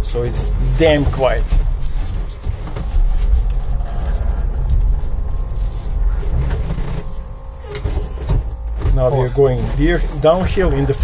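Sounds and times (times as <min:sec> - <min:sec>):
vehicle drivetrain rumble: 0:00.0 - 0:11.0.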